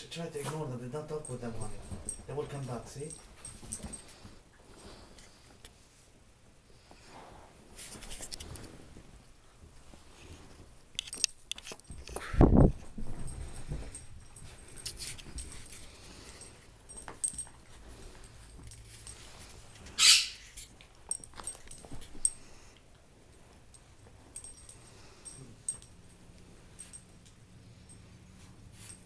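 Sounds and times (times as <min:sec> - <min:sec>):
puppies scuffling: 0:00.2 - 0:05.6, 0:11.7 - 0:22.7
puppy high cry: 0:20.0 - 0:20.4.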